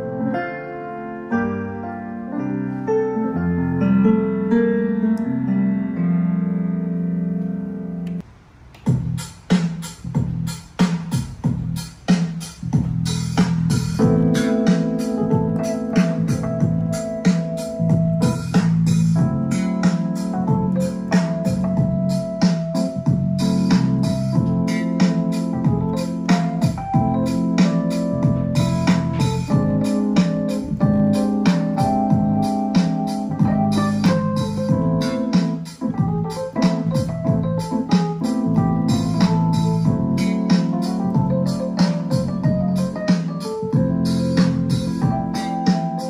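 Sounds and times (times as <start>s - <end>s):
piano chords: 0.0s - 8.3s, 12.7s - 46.0s.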